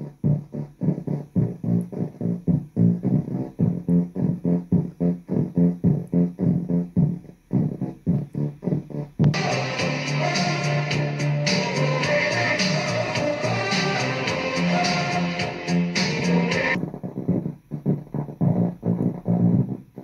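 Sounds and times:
plucked bass line through small speaker: 0.0 - 20.0.

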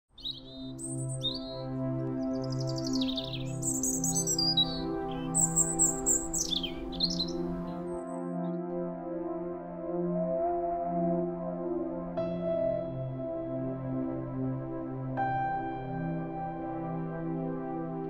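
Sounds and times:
birds chirping and trilling: 0.1 - 8.0
ambient music with held notes: 0.1 - 18.0.

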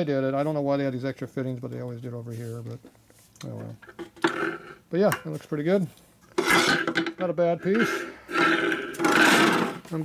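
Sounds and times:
metal tank scraping on steel bench: 6.4 - 7.0, 7.6 - 9.8.

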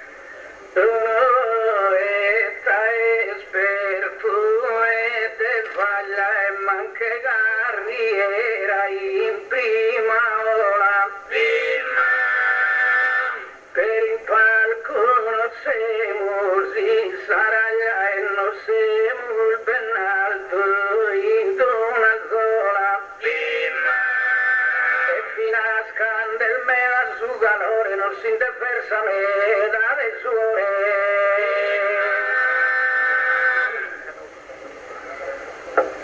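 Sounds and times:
man singing a chant: 0.8 - 34.2.

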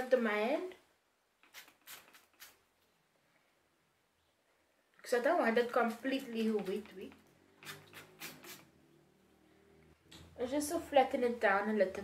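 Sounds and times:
spray bottle misting water: 1.4 - 2.7, 6.2 - 8.8.

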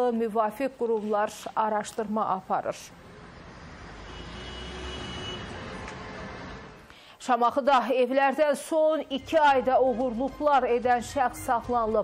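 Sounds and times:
distant traffic rumble: 1.8 - 6.9.

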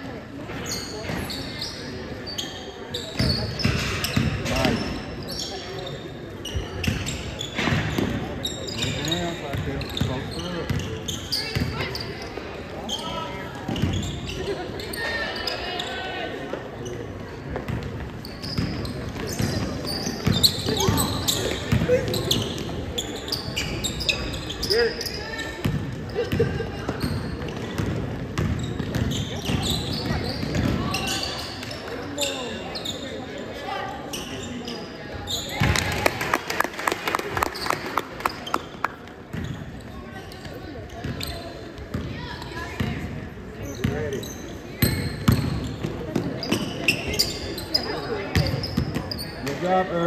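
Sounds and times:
voices echoing in gym: 0.0 - 50.0.

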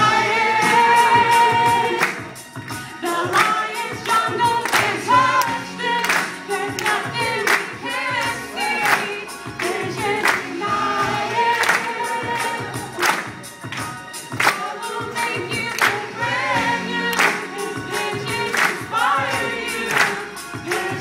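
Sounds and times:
group of voices singing: 0.0 - 21.0
music with steady beat: 0.0 - 21.0.

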